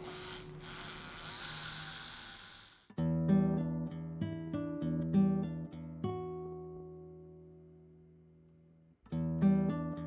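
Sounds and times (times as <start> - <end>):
tattoo machine buzzing: 0.0 - 2.9.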